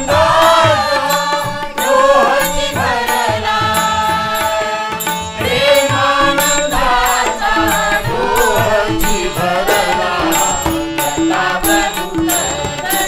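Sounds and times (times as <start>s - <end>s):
harmonium melody: 0.0s - 13.0s
people singing: 0.0s - 13.0s
tabla playing: 0.0s - 13.0s.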